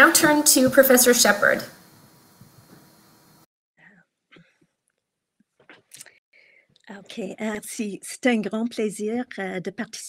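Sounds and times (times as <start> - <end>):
woman speaking: 0.0 - 1.7, 6.9 - 10.0.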